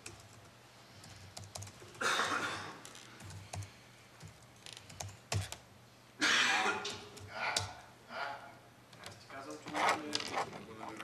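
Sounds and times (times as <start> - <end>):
laptop keyboard typing: 0.0 - 2.0, 3.2 - 5.6.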